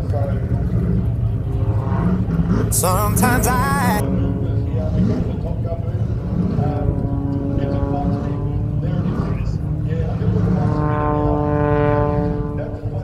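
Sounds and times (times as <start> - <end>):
propeller plane droning: 0.0 - 2.8, 4.0 - 13.0
indistinct voices: 2.7 - 4.0.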